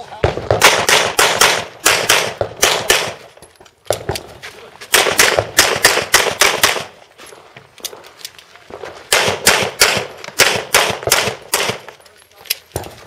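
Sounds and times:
rapid pistol shots: 0.2 - 3.2, 4.9 - 6.9, 9.1 - 11.9.

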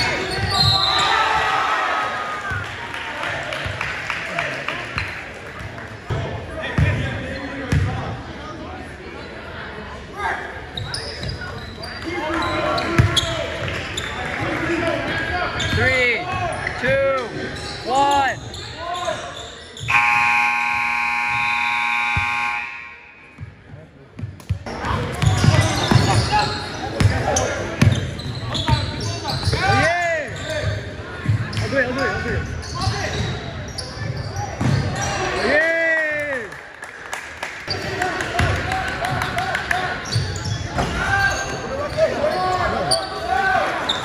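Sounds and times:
sneakers squeaking: 0.0 - 1.5, 10.7 - 14.5, 15.1 - 22.6, 23.2 - 35.5, 37.7 - 39.4, 40.0 - 44.0
voices echoing in gym: 0.0 - 44.0
scoreboard buzzer horn: 19.9 - 23.2.

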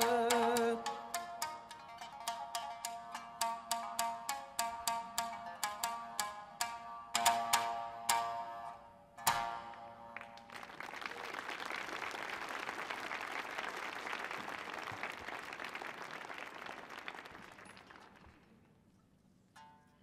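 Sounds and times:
plucked shamisen note: 0.0 - 10.4
audience applause: 10.2 - 18.5.

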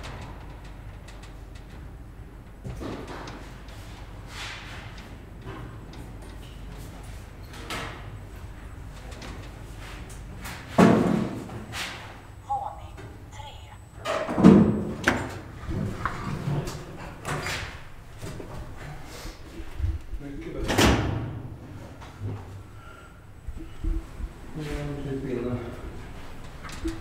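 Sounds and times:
low steady hum: 11.5 - 20.6.

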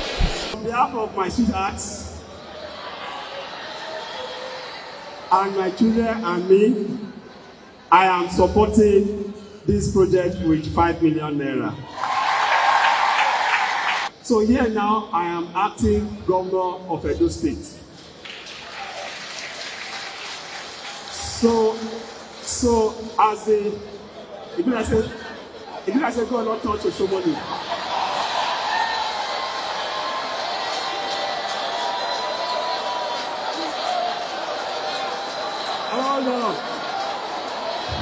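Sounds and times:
crowd applauding: 0.0 - 0.6, 11.9 - 14.1, 18.0 - 24.0, 26.2 - 38.0.

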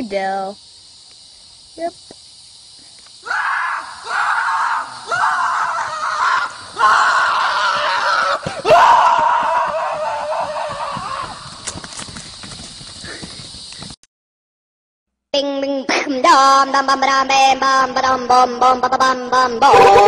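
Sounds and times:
person screaming: 3.2 - 11.4.

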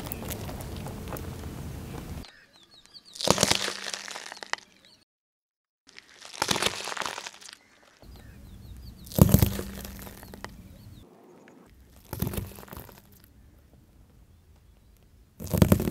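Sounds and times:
tyre crushing potatoes: 3.0 - 4.8, 5.9 - 10.6, 11.7 - 13.4, 14.6 - 15.9.

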